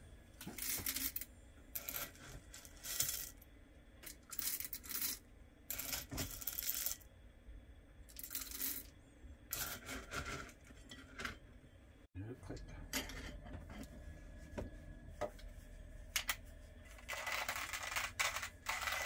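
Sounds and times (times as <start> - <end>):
coffee beans rattling on steel: 0.4 - 3.4, 4.0 - 7.0, 8.1 - 8.9, 17.0 - 19.0.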